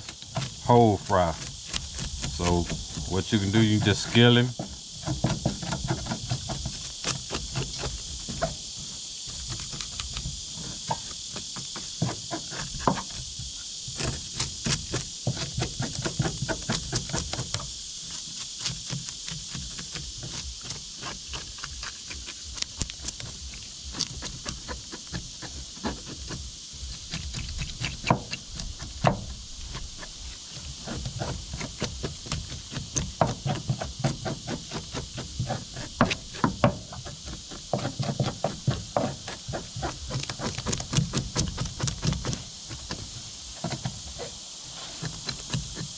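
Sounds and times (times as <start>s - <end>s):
insects chirping: 0.0s - 45.9s.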